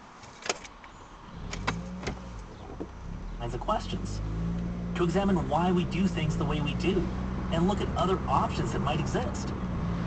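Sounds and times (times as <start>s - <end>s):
car engine hum in cabin: 0.8s - 10.0s.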